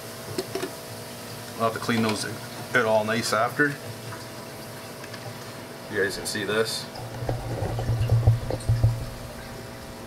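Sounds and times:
skimmer humming: 0:00.4 - 0:10.0
short pops and knocks: 0:07.2 - 0:09.2.

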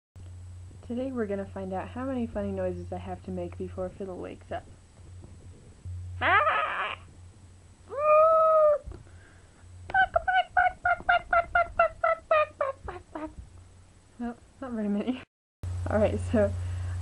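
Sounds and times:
woman making silly vocal noises: 0:06.2 - 0:07.1, 0:07.9 - 0:08.9, 0:09.9 - 0:13.4.

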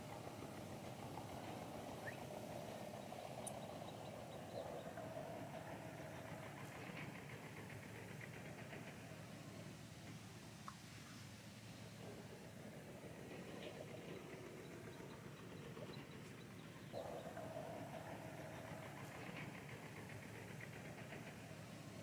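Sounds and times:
distant engine drone: 0:00.0 - 0:22.0.

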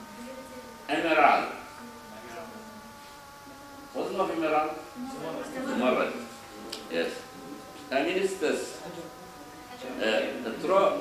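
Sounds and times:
steady buzzing hum: 0:00.0 - 0:11.0.

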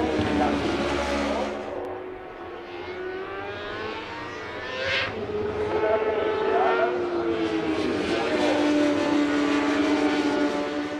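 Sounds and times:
racing motorcycle engines: 0:00.0 - 0:10.9.

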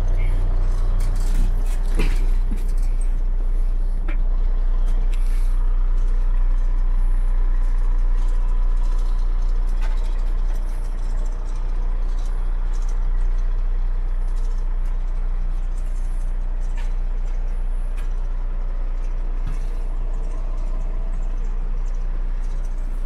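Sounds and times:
diesel engine idling: 0:00.0 - 0:23.0.

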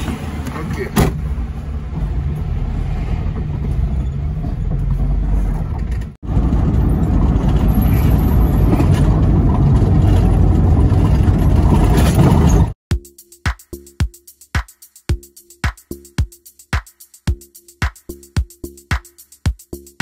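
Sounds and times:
road noise inside car: 0:00.0 - 0:12.8.

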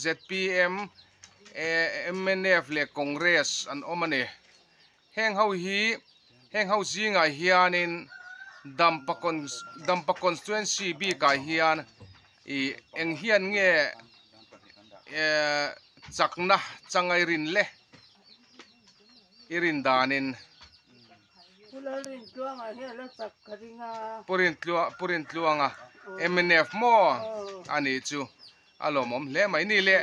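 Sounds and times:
chicks chirping: 0:00.0 - 0:30.0
person speaking: 0:26.1 - 0:28.2.

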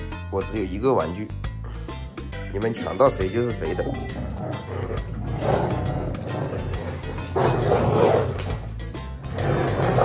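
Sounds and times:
background music: 0:00.0 - 0:10.0
dog growling: 0:03.7 - 0:10.0.

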